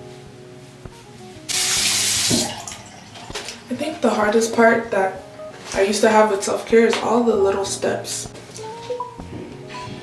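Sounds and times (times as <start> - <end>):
water running from sink tap: 1.5 - 3.9.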